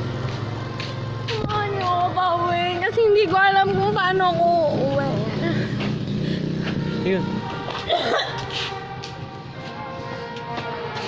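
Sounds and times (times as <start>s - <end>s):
engine running with low hum: 0.0s - 11.0s.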